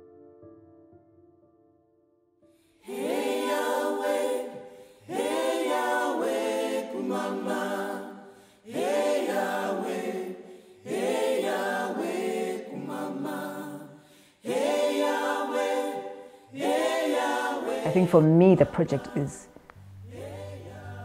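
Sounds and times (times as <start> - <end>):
unaccompanied voices singing in harmony: 2.8 - 21.0.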